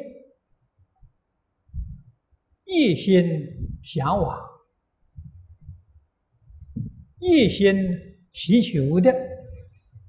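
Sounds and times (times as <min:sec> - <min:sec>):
soft low thumps on microphone: 0:00.8 - 0:02.2, 0:03.4 - 0:04.5, 0:05.1 - 0:08.0, 0:09.0 - 0:10.0.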